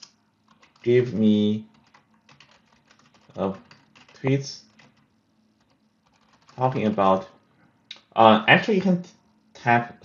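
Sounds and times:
computer keyboard typing: 0.0 - 7.3.

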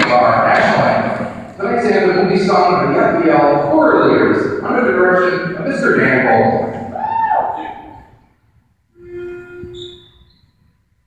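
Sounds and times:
loudspeaker announcement: 0.0 - 6.8
pitch pipe note: 8.9 - 10.2.

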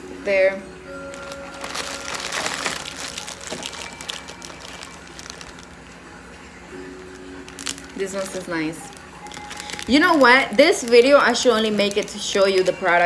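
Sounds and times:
plastic bag crinkling: 1.1 - 5.8, 7.0 - 13.0.

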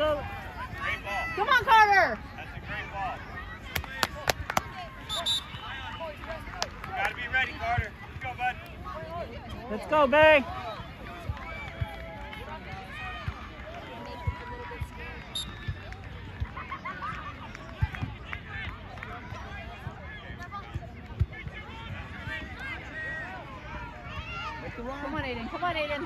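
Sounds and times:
people chattering and calling out: 0.0 - 26.0.

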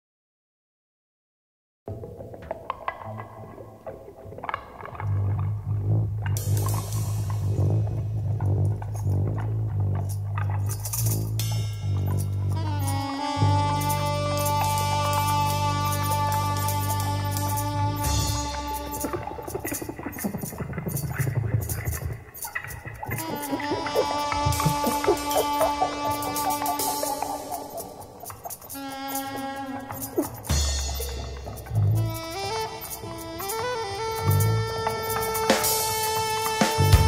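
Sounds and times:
loud sustained bass note: 5.6 - 19.9, 23.1 - 27.8
bright high percussion: 10.7 - 37.0
band music: 11.8 - 37.0
picked electric guitar notes: 11.9 - 37.0.

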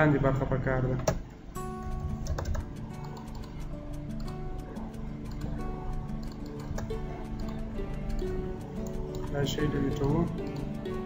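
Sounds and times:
background music with held notes: 1.3 - 11.0
keyboard and mouse clicks: 1.9 - 4.4, 5.2 - 10.8.

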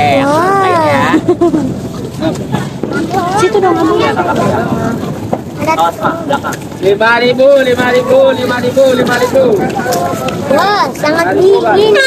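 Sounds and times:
crowded street hubbub: 0.0 - 12.0
people talking close by: 0.0 - 12.0.

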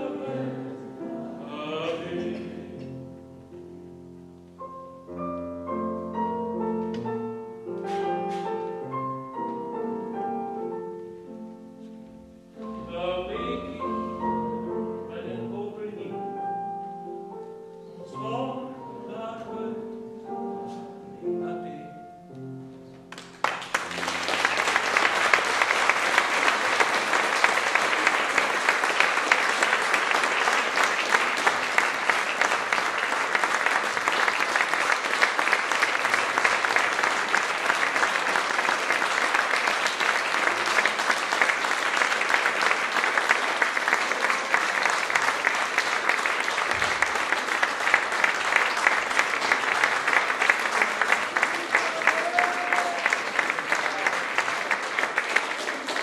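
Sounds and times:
audience applauding: 23.1 - 56.0.

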